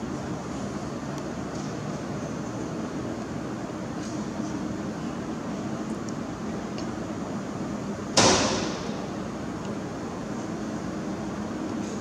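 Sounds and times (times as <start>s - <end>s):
loud sharp bang: 8.2s - 9.0s.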